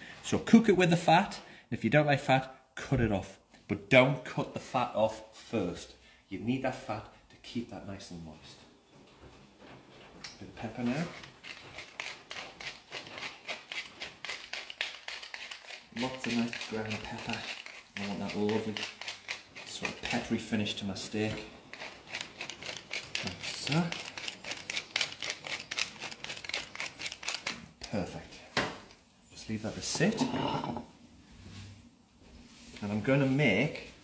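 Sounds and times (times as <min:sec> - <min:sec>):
pepper mill grinding peppercorns: 0:10.7 - 0:28.0.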